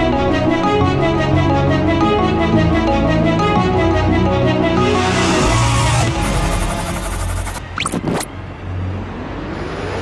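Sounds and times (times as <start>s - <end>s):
synthesized tone gliding upward: 4.8s - 8.3s.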